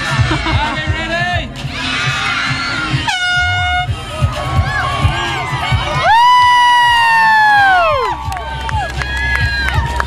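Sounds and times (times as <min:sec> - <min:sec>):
crowd cheering: 0:01.8 - 0:10.0
air horn blast: 0:03.1 - 0:04.0.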